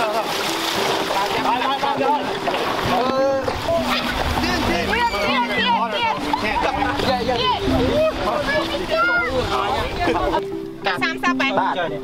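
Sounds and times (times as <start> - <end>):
background music: 0.0 - 12.0
people talking over each other: 0.0 - 12.0.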